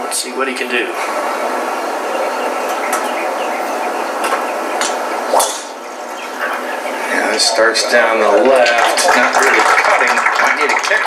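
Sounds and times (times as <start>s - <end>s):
steady background noise: 0.0s - 11.0s
golf club striking ball: 4.2s - 5.8s.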